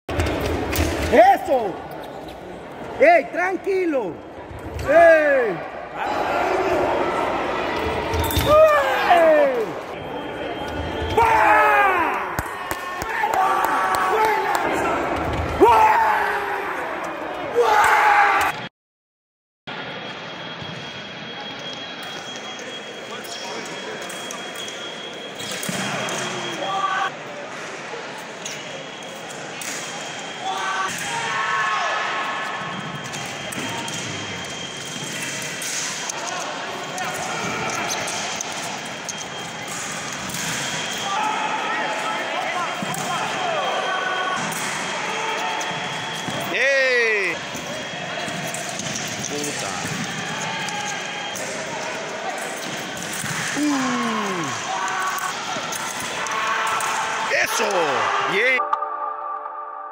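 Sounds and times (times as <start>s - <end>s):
steady high-pitched tone: 58.5s - 59.9s.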